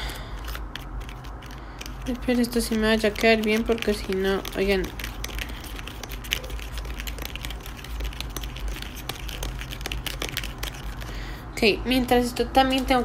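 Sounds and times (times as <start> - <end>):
plastic candy kit clicking and rustling: 0.0 - 11.2
steady low hum: 0.0 - 13.0.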